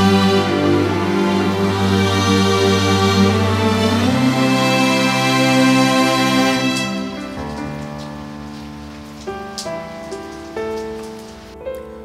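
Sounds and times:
soft sad instrumental music: 0.0s - 12.0s.

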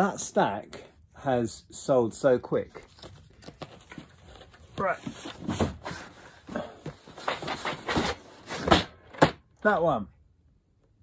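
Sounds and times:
cardboard boxes knocking and scraping: 4.9s - 9.4s.

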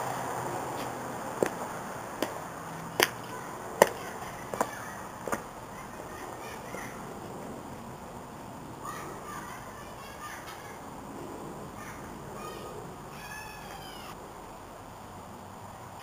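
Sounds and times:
footsteps on pavement: 0.5s - 8.4s.

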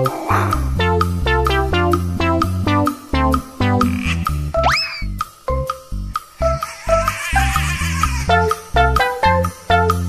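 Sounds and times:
bouncy children's music: 0.0s - 10.0s
cartoon rising whistle glide: 4.6s - 5.2s.

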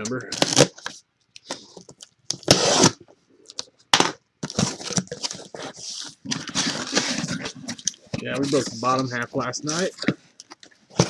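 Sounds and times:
box cutter slicing packing tape: 2.4s - 3.0s
cardboard scraping and rustling: 4.4s - 9.0s.

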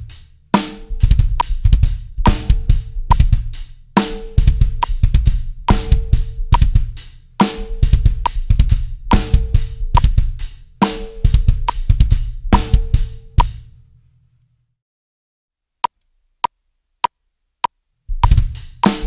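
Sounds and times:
snare and cymbals: 0.0s - 13.8s, 18.1s - 19.0s
double bass drum kicks: 0.9s - 3.6s, 4.2s - 13.7s, 18.1s - 19.0s.

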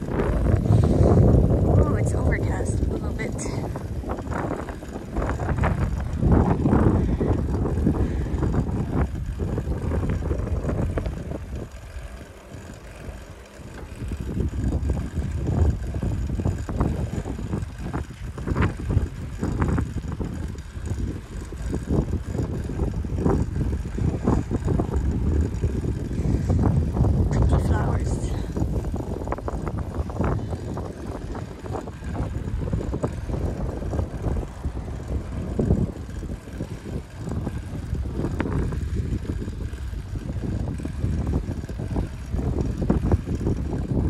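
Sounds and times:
bicycle tyres rolling on asphalt: 0.0s - 44.0s
wind buffeting microphone: 0.0s - 44.0s.

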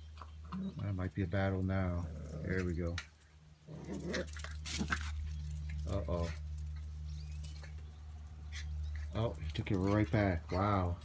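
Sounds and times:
faint bird chirp: 0.0s - 3.8s
puppy claws clicking on concrete: 1.5s - 11.0s.

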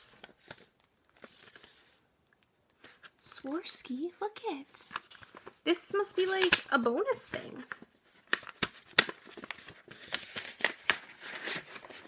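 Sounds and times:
paper rustling and crinkling: 0.2s - 2.1s, 2.7s - 3.3s, 4.7s - 12.0s.

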